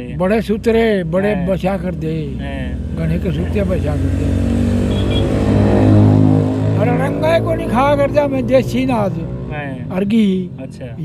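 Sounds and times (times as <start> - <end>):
vehicle engine passing by: 1.5 - 10.8.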